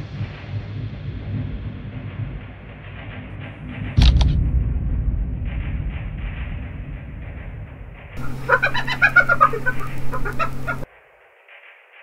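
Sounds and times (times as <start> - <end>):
steady low hum: 4.0 - 10.9
background music: 8.2 - 10.8
laughing sound clip: 8.2 - 10.8.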